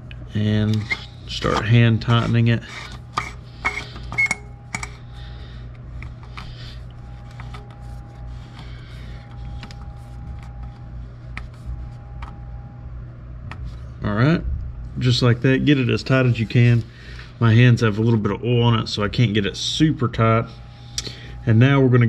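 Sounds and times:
steady low hum: 0.0 - 22.0
short squeaks: 3.7 - 4.5.

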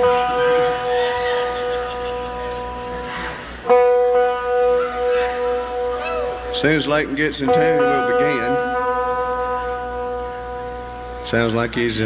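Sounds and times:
guitar note ringing: 0.0 - 12.0.

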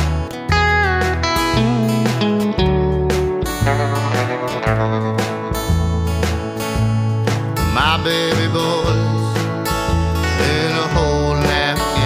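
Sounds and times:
acoustic guitar: 0.0 - 12.0
bass line: 0.0 - 12.0
sliding melody line: 0.5 - 9.4.

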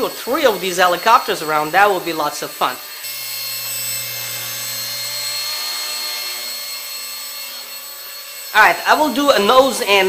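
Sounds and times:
toy helicopter rotor whine: 0.0 - 10.0.

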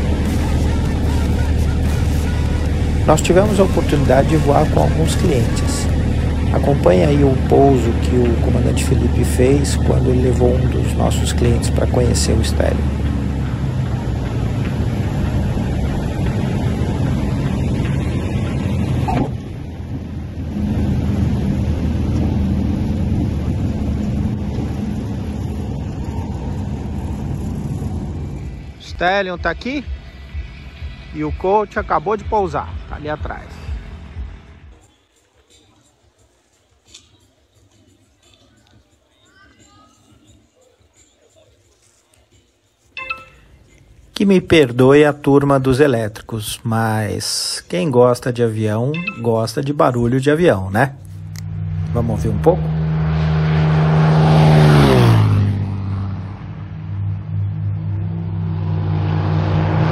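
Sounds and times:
light aircraft engine and propeller: 0.0 - 28.9
rushing air: 12.5 - 28.8
faint background noise: 21.8 - 52.5
short ringing tone: 43.0 - 43.6.

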